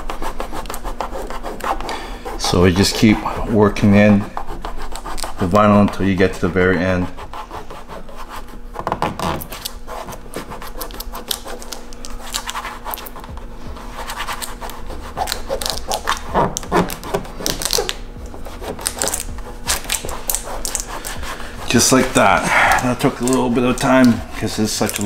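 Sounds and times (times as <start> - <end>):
fingers rubbing film on plastic: 0.0 - 25.0
film crackling and clicking: 23.0 - 25.0.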